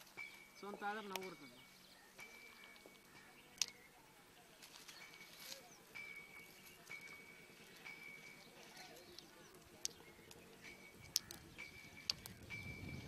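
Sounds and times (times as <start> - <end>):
faint voices: 0.6 - 12.5.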